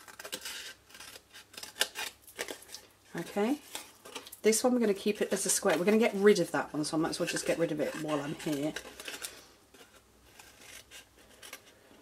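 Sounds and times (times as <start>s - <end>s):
scissors snipping paper: 0.0s - 6.4s, 7.0s - 11.8s.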